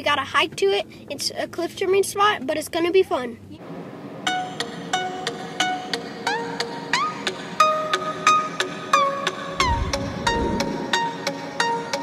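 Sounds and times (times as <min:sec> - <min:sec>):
plucked string melody: 0:04.3 - 0:12.0.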